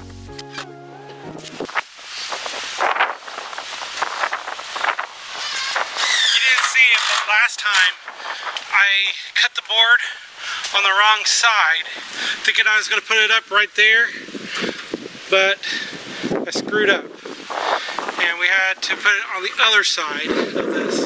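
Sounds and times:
background music: 0.0 - 1.7
outdoor noise: 0.0 - 21.0
man talking: 6.4 - 14.3, 15.3 - 17.1, 18.2 - 21.0.

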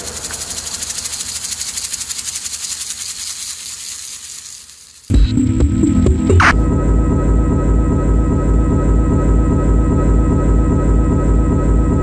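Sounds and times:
deep synth bass: 5.1 - 12.0
high-pitched pulsing electronic jazz: 5.1 - 12.0.

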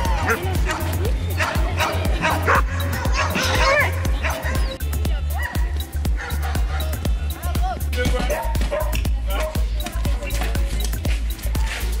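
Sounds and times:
dogs barking and yipping: 0.0 - 4.8, 5.4 - 7.1, 8.2 - 9.7
music with bass line: 0.0 - 12.0.

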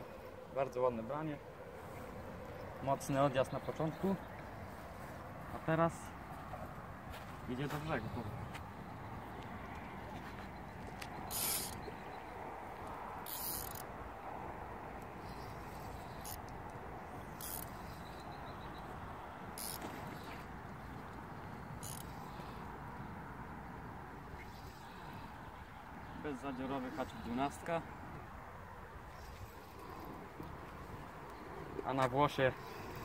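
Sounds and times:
fishing reel drag buzzing: 11.3 - 11.8, 13.2 - 13.9, 15.2 - 16.6, 17.2 - 18.3, 19.5 - 20.4, 21.8 - 22.6.

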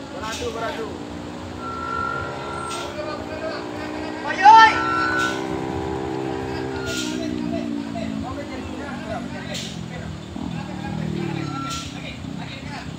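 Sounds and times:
diesel truck engine under load: 0.0 - 12.9
person shouting: 4.2 - 5.0.

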